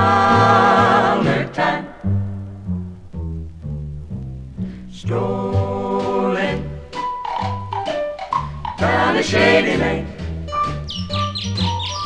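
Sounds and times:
choir voices singing: 0:00.0 - 0:02.2, 0:04.9 - 0:07.2, 0:08.7 - 0:10.4
walking bass and rhythm section: 0:00.0 - 0:12.0
short high chirping notes: 0:10.6 - 0:12.0.

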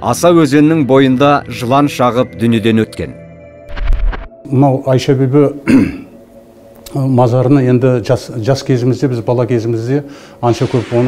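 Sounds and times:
man clearing his throat: 0:05.6 - 0:06.2
man speaking: 0:06.9 - 0:11.0.

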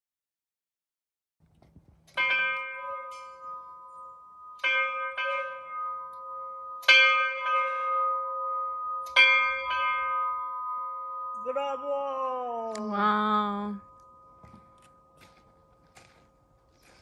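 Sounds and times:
bell ringing: 0:02.2 - 0:16.6.

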